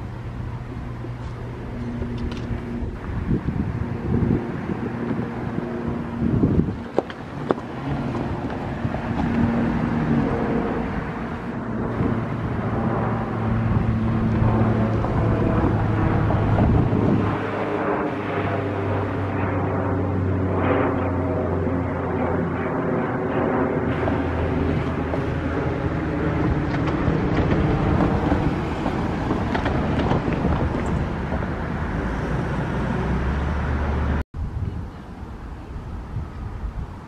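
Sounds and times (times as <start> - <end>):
electric train approaching: 0.0 - 17.4, 23.9 - 34.2
wind on microphone: 0.0 - 37.0.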